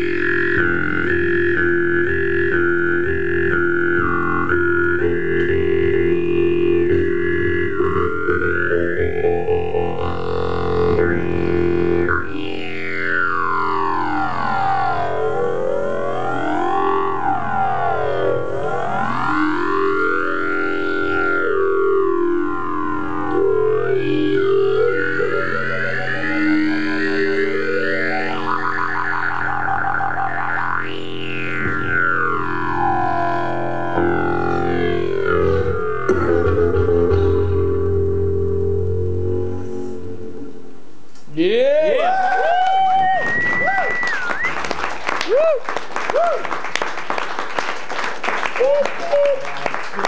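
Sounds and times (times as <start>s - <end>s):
jew's harp drone: 0.0s - 40.9s.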